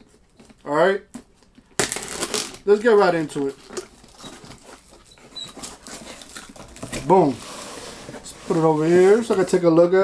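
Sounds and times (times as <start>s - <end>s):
cardboard box rustling and crinkling: 3.1s - 9.8s
faint high squeak: 5.1s - 5.8s.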